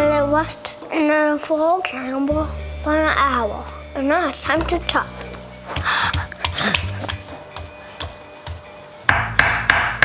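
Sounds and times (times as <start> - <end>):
background music: 0.0 - 10.0
knife chopping on wooden board: 5.8 - 10.0.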